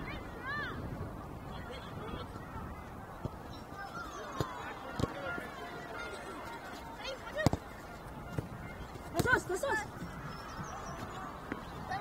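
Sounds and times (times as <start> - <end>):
ball being kicked: 7.3 - 7.6.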